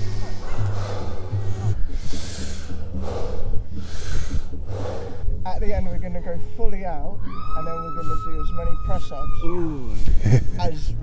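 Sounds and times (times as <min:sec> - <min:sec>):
forceful breathing through mouth: 0:00.0 - 0:05.4.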